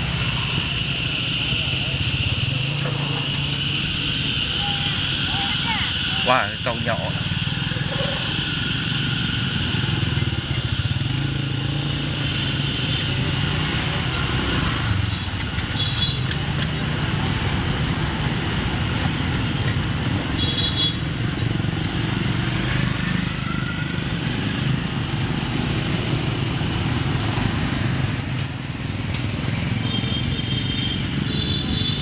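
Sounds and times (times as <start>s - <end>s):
motorbikes passing: 0.0s - 32.0s.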